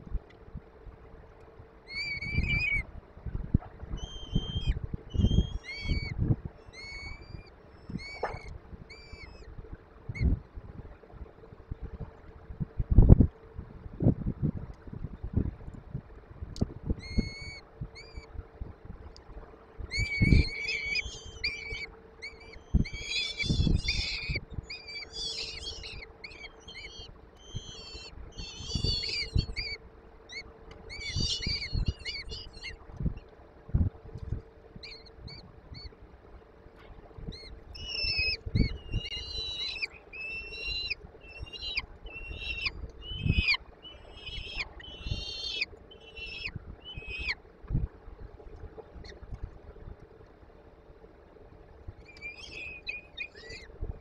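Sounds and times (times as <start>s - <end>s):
falcon chicks shrill begging calls: 1.9s - 2.8s, 4.0s - 6.1s, 6.7s - 7.2s, 19.9s - 32.7s, 37.8s - 47.4s.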